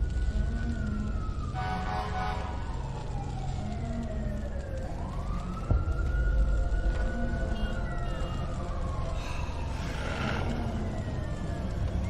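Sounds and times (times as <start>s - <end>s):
siren-like wail: 0.0s - 12.0s.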